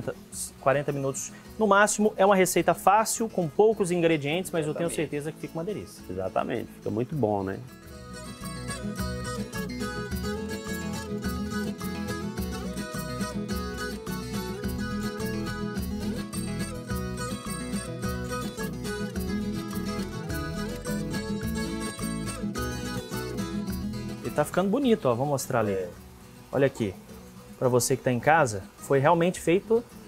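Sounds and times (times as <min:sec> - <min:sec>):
plucked guitar over a beat: 0:03.2 - 0:27.7.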